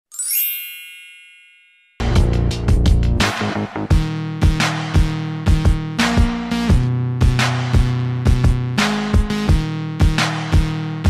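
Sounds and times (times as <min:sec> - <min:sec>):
sparkling chime: 0:00.1 - 0:02.0.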